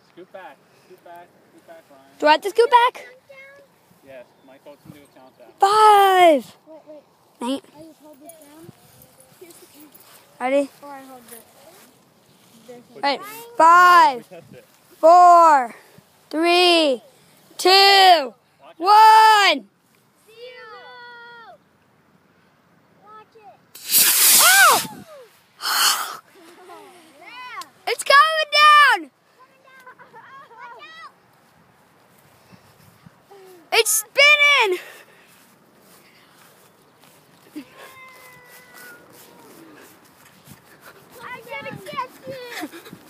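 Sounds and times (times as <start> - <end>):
children's voices: 2.2 - 3.9, 5.6 - 14.2, 26.1 - 31.4, 33.2 - 43.0
model rocket motor whoosh: 23.8 - 25.0.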